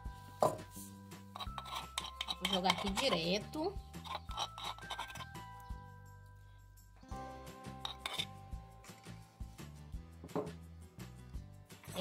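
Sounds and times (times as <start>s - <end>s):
background music with held notes: 0.0s - 12.0s
metal spoon tapping wooden mortar: 1.3s - 5.8s, 7.7s - 8.4s.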